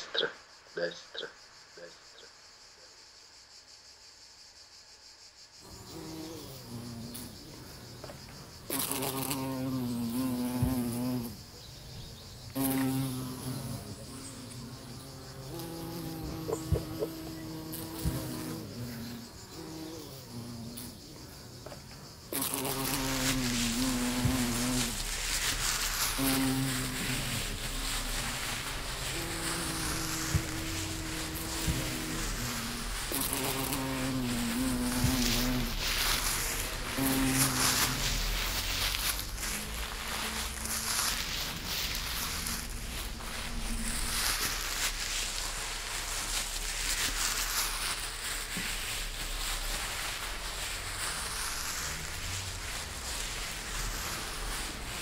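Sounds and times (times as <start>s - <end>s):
flying insect buzzing: 0.0s - 55.0s.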